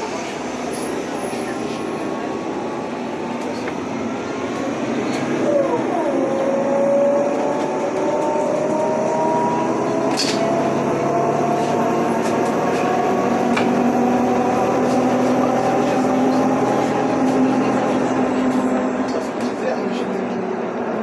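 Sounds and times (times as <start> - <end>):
bus engine whine: 0.0 - 21.0.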